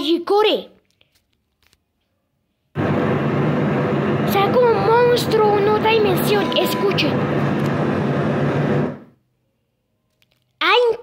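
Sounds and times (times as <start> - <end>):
hissing synthesized drone: 2.8 - 9.1
steady low hum: 2.8 - 9.1.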